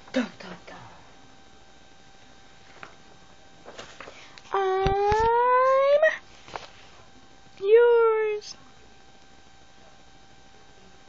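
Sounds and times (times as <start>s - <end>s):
long high vocal note: 4.5s - 6.2s.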